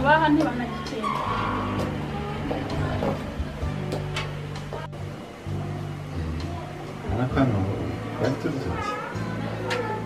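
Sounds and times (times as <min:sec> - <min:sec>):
car tyres skidding: 0:01.0 - 0:02.0.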